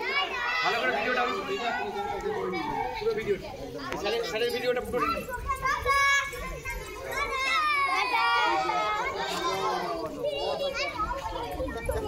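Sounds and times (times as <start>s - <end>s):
children shouting and chattering: 0.0s - 12.0s.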